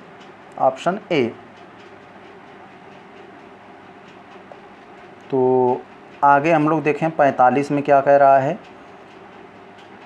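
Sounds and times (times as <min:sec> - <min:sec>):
low background hum and hiss: 0:00.0 - 0:10.0.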